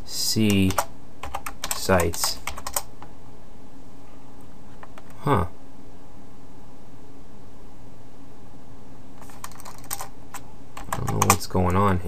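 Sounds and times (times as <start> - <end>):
low background hum: 0.0 - 12.0
keyboard keystrokes clicking: 0.5 - 2.9, 9.2 - 11.8.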